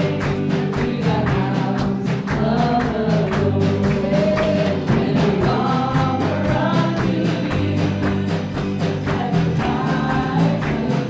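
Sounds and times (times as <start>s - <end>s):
drums: 0.0s - 11.0s
electric guitars: 0.0s - 11.0s
keyboard: 0.0s - 11.0s
voices singing together: 0.0s - 11.0s.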